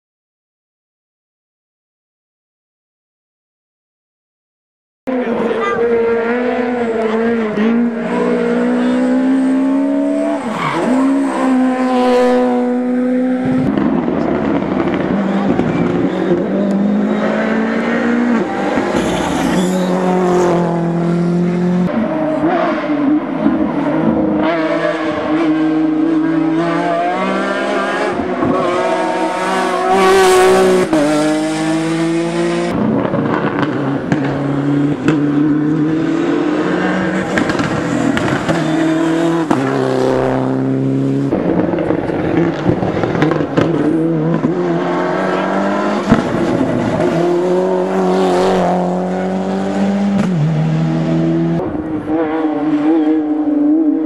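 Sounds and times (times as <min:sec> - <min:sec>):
rally car engines at full throttle: 0:05.1 - 0:54.0.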